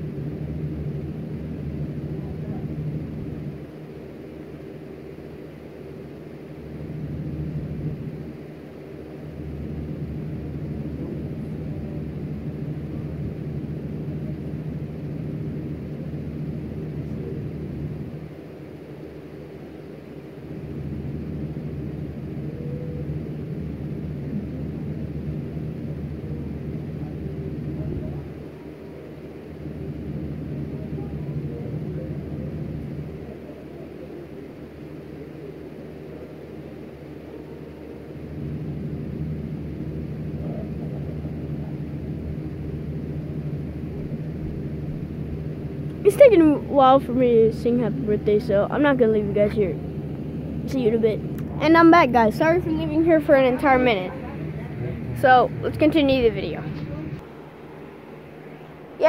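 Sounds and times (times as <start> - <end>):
low mechanical motor hum: 0.0 - 59.0.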